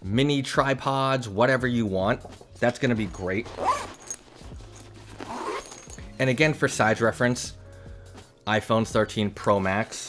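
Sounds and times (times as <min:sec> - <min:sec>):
nylon bag rustling: 0:02.7 - 0:06.2.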